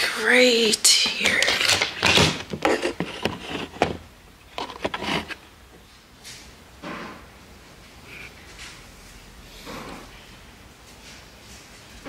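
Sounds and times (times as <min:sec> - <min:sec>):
camera handling knocks and rustles: 0:01.6 - 0:04.0.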